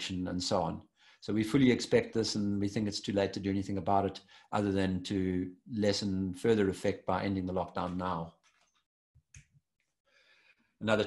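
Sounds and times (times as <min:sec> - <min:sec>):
person speaking: 0:00.0 - 0:08.4.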